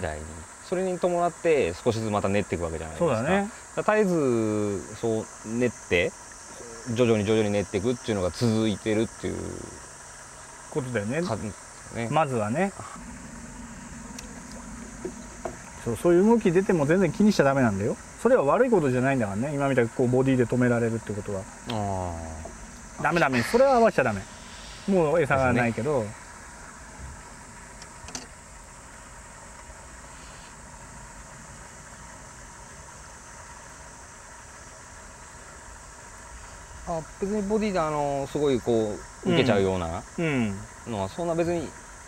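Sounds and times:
insects droning: 0.0s - 42.0s
low hum: 4.2s - 33.1s.

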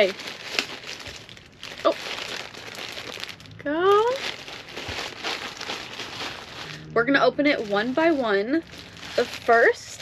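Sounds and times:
plastic mailer bag crinkling: 0.0s - 10.0s.

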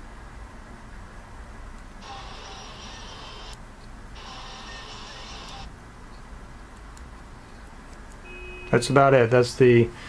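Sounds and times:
driving video from phone speaker: 2.0s - 3.6s, 4.2s - 5.7s.

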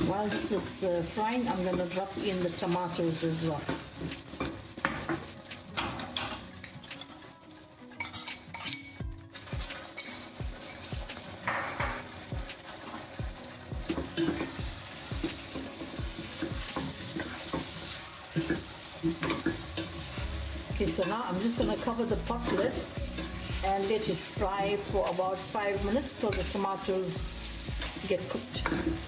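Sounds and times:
food sizzling in oil: 0.0s - 29.0s
metal spoon scraping a pot: 22.3s - 23.6s.

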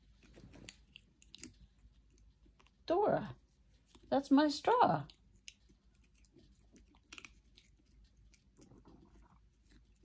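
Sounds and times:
kitten chewing plastic straw: 0.0s - 4.1s, 5.0s - 10.0s.

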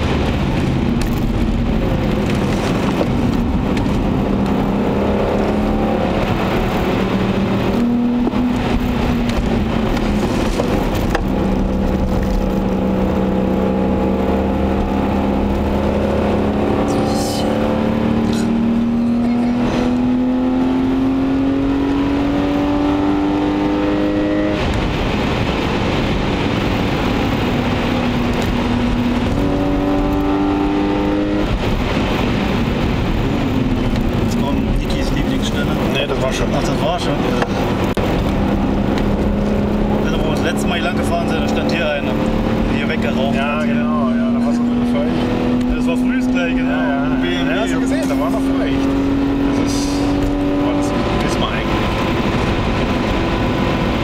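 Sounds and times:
car engine accelerating: 0.0s - 54.0s
road and tyre noise: 0.0s - 54.0s.

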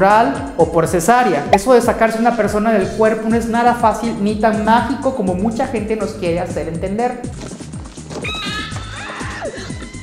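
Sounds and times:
music with thumping beat: 0.0s - 10.0s
shrill high scream: 8.2s - 10.0s.

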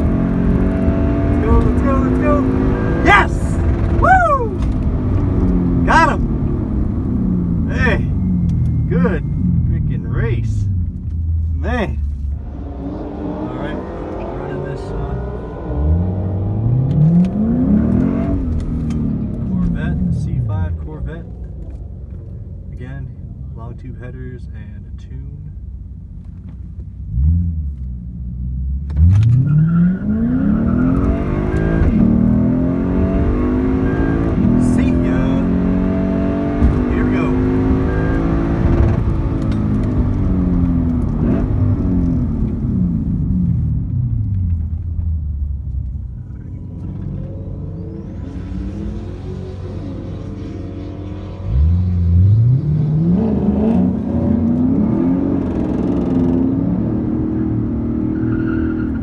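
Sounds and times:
car accelerating at full throttle: 0.0s - 22.8s, 28.8s - 59.0s
car engine revving: 0.0s - 24.7s, 25.6s - 59.0s.

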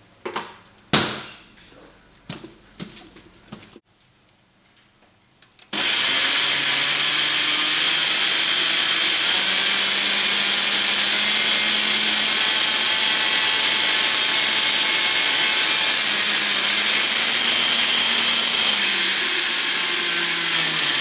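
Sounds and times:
blender motor running: 5.7s - 21.0s.

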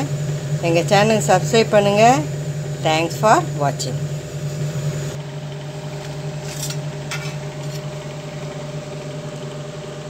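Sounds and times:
electric motor humming: 0.0s - 9.5s.

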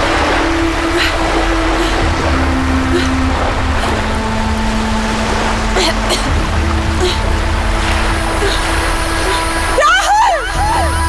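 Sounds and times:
low background music notes: 0.0s - 11.0s
sea and wind rushing: 0.0s - 11.0s.

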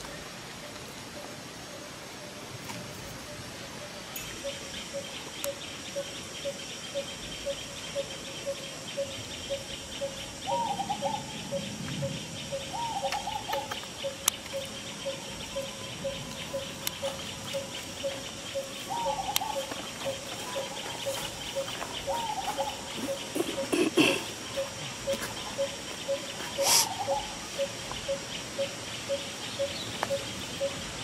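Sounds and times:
high insect drone: 0.0s - 31.0s.

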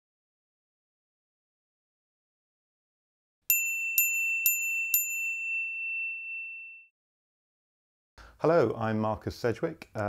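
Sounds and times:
high bell-like ding: 3.5s - 6.9s.

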